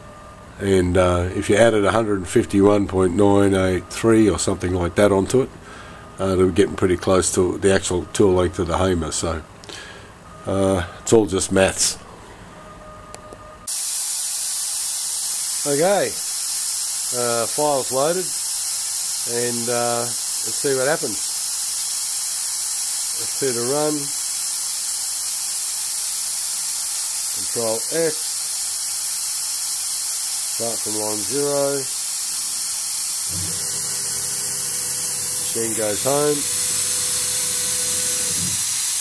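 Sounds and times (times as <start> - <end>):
loud steady hiss: 13.6 - 39.0
person speaking: 15.6 - 16.2, 17.1 - 18.4, 19.2 - 21.3, 23.2 - 24.1, 27.4 - 28.2, 30.6 - 31.9, 35.3 - 36.6.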